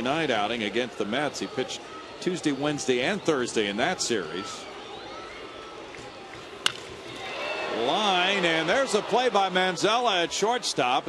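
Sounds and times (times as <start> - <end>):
ballpark crowd noise: 0.0 - 11.0
baseball bat crack: 5.9 - 7.3.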